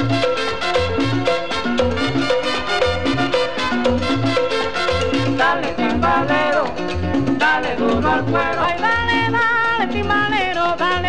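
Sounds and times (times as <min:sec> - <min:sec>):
salsa band recording on vinyl: 0:00.0 - 0:11.0.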